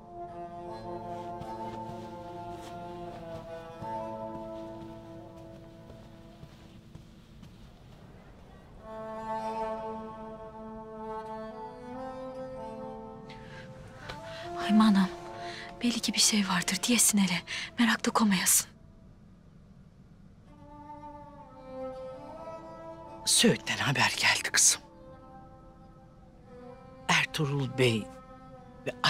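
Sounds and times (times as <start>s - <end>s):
held string chords: 0.0s - 7.7s, 8.8s - 17.1s.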